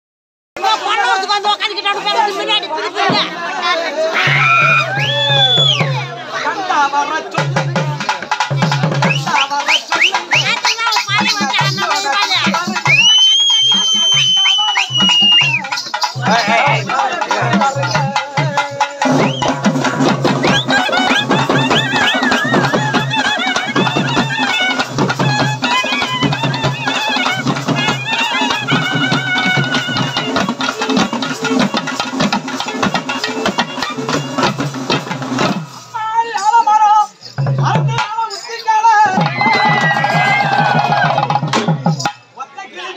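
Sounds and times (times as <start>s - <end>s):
drums beaten with sticks: 7.3s - 42.4s.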